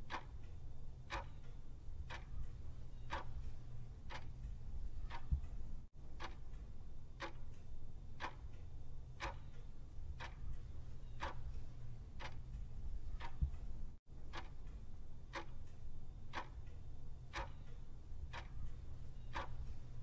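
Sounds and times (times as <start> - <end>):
clock ticking: 0.0 - 20.0
steady low hum: 0.0 - 20.0.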